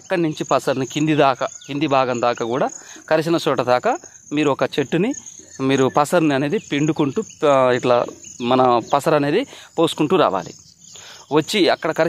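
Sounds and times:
man speaking: 0:00.0 - 0:10.6, 0:11.3 - 0:12.0
insects chirring: 0:00.0 - 0:12.0.

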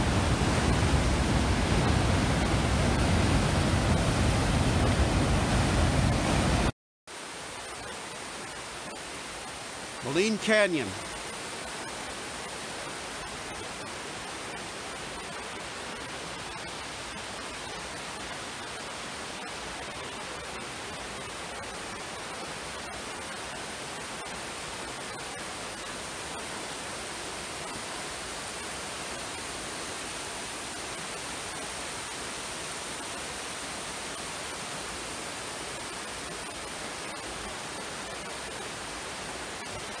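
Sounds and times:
waterfall rushing: 0:00.0 - 0:06.7, 0:07.3 - 0:40.0.

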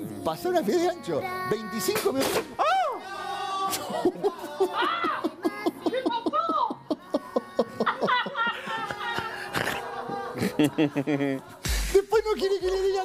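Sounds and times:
people exclaiming: 0:02.6 - 0:10.3
people laughing: 0:02.8 - 0:13.0.

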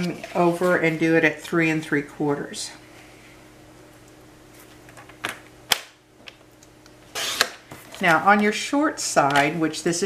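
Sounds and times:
paper trimmer scrape: 0:07.1 - 0:07.6.

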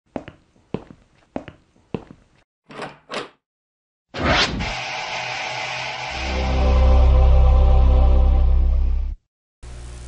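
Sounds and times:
short rushing swells: 0:04.2 - 0:07.3.

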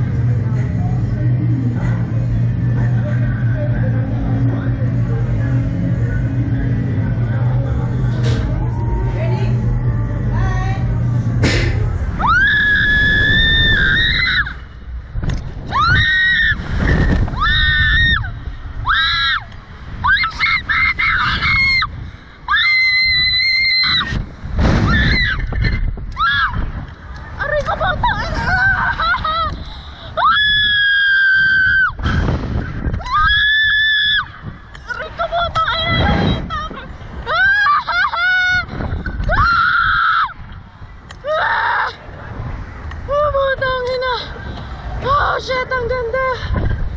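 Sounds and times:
wind rushing on microphone: 0:12.1 - 0:41.3, 0:41.9 - 0:46.9.

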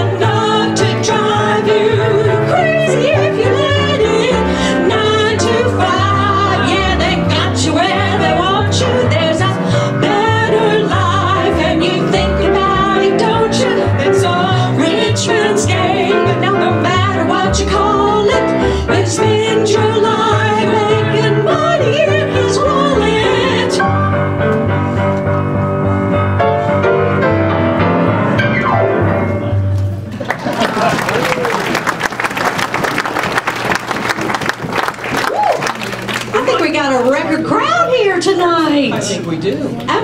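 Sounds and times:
women singing a duet: 0:00.0 - 0:23.8
piano accompaniment: 0:00.0 - 0:30.6.

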